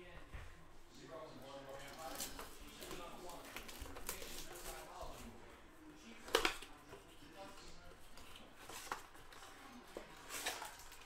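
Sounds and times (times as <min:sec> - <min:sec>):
cardboard handling: 0:01.8 - 0:05.4.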